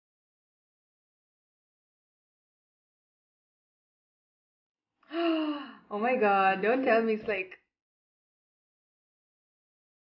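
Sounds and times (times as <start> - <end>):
woman gasping: 5.1 - 5.9.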